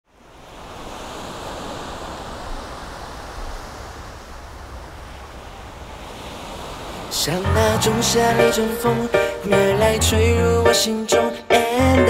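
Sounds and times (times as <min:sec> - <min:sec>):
small waves washing on sand: 0:00.1 - 0:07.5.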